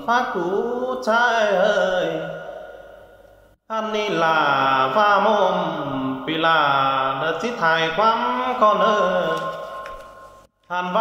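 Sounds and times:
man singing in low voice: 0.0 - 9.8, 10.7 - 11.0.

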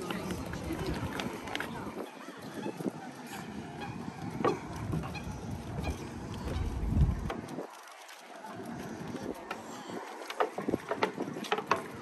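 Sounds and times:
footsteps on walkway: 0.0 - 12.0
passers-by talking: 0.0 - 12.0.

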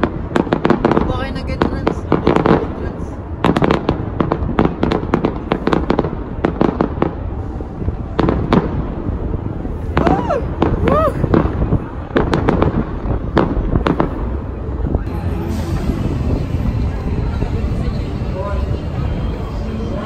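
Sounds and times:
fireworks cracks and bangs: 0.0 - 17.9.

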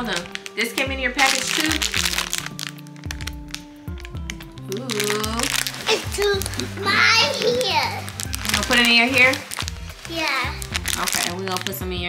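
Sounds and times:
plastic bag crinkling: 0.0 - 12.0
music with sliding bass: 3.1 - 12.0.

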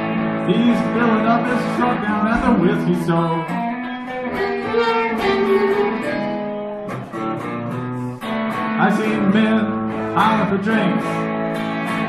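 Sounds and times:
amplified harmonica sustained notes: 0.0 - 12.0
blues guitar: 0.0 - 12.0
live blues band playing: 0.0 - 12.0.

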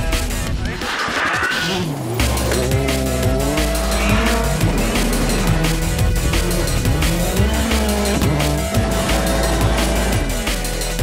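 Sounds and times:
electronic music with heavy bass: 0.0 - 11.0
rally car engines revving: 1.6 - 11.0.

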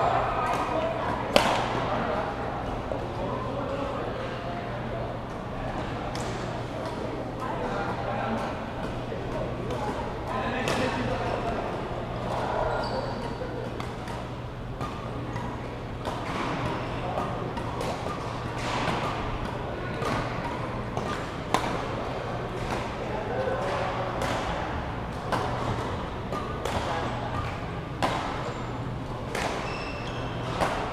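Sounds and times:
chatter of players: 0.0 - 30.9
steady low hum: 0.0 - 30.9
rackets striking shuttlecocks: 1.3 - 1.8, 13.2 - 28.5, 29.2 - 30.9.

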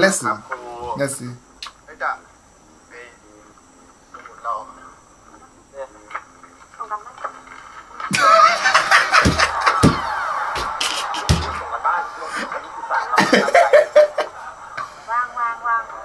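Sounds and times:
heavy thumps: 9.0 - 11.8.

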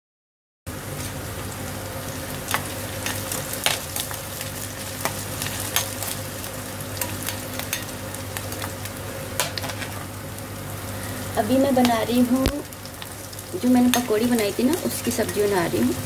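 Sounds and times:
onion sizzling in a pan: 0.7 - 16.0.

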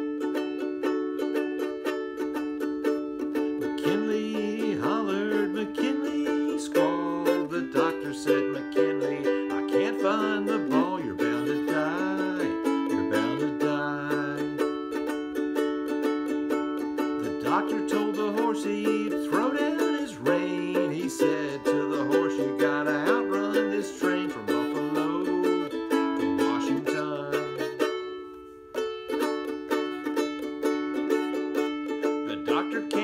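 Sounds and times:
ukulele strumming: 0.0 - 33.0
man singing: 3.6 - 15.2, 17.0 - 28.0, 32.0 - 33.0.

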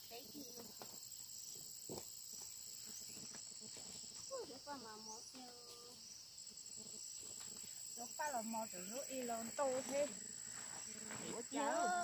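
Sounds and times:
insects droning: 0.0 - 12.0
woman talking: 4.3 - 6.0, 8.0 - 10.2, 10.9 - 12.0.

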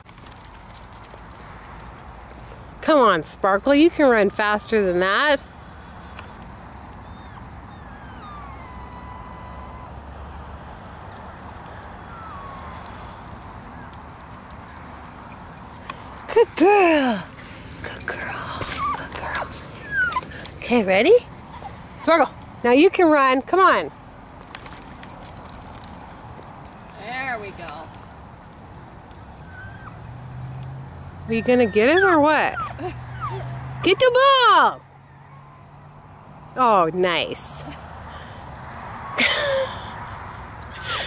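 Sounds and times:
jingling clicks of running dogs: 0.0 - 3.9, 8.1 - 30.8, 37.8 - 41.0
dog whining: 6.9 - 16.2, 18.0 - 20.5, 29.2 - 30.1, 31.3 - 33.6.

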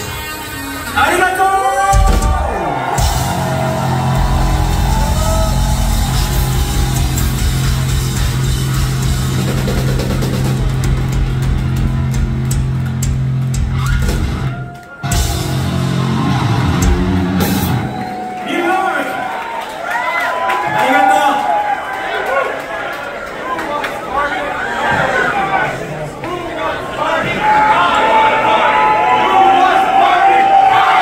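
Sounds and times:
metal band playing live: 0.0 - 18.1.

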